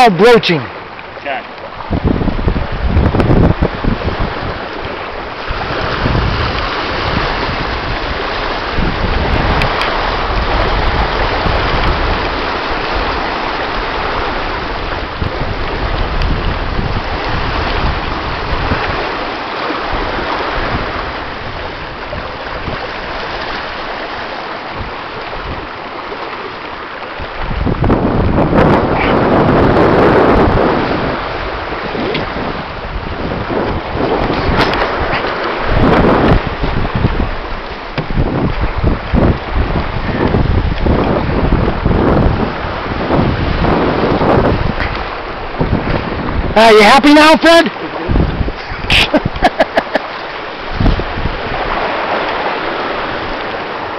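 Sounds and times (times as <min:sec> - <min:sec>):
breaking boat wake: 0:00.0 - 0:53.9
water rushing: 0:00.0 - 0:53.9
wind buffeting microphone: 0:00.0 - 0:53.9.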